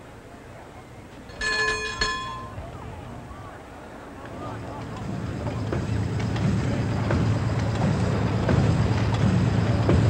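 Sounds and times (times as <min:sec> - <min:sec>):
low steady hum: 0:00.0 - 0:04.3
handle clatter: 0:01.3 - 0:02.6
engine order telegraph bell ringing: 0:01.3 - 0:02.7.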